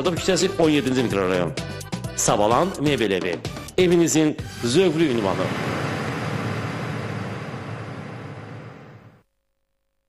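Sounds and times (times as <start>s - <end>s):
dense wash of noise: 4.9s - 9.2s.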